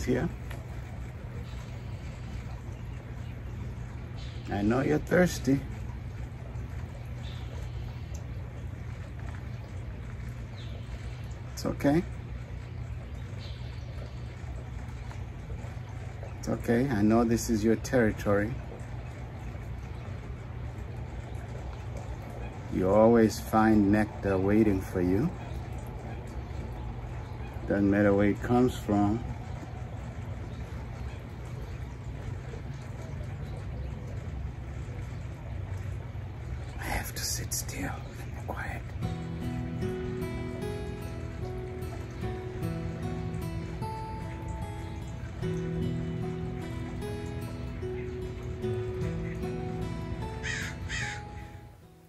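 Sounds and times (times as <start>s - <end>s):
hummingbird chirp: 0.0s - 51.8s
low outdoor background rumble: 0.0s - 52.0s.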